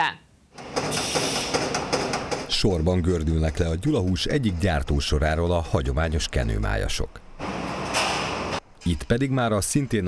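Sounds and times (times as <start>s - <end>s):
production-line machinery running: 0.6s - 2.6s.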